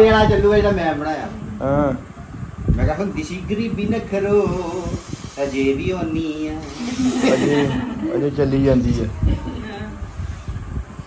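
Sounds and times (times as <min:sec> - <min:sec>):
people talking: 0:02.8 - 0:10.2.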